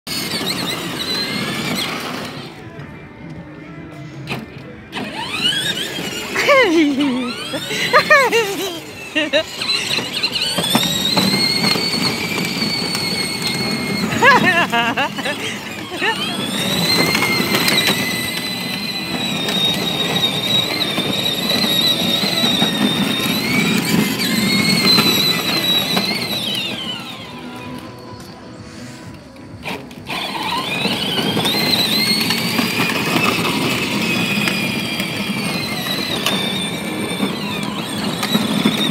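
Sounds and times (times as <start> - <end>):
plastic wheels rumbling on concrete: 0.0 - 3.4, 4.1 - 38.9
electric toy car motor humming: 0.1 - 2.6, 4.3 - 38.9.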